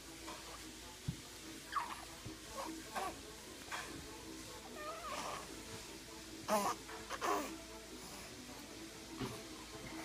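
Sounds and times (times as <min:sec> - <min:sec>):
baby cooing: 0:01.7 - 0:03.2, 0:06.5 - 0:07.6.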